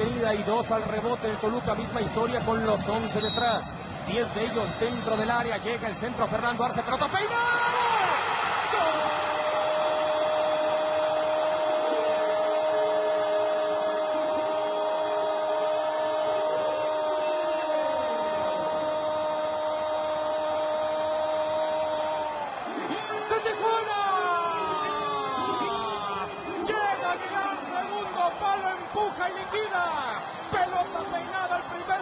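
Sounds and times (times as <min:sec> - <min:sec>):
stadium crowd: 0:00.0 - 0:32.0.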